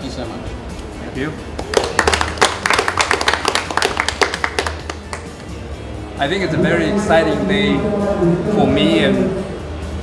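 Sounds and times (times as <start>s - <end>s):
small group applauding: 1.6s - 5.5s.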